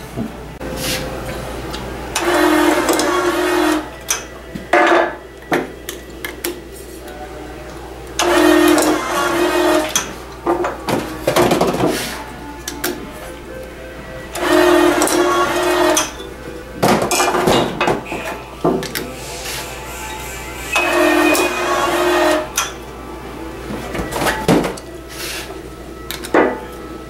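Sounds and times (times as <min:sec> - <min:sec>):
bottle capping machine motor whir: 0:01.7 - 0:04.9, 0:08.0 - 0:11.4, 0:14.3 - 0:16.2, 0:17.1 - 0:22.8.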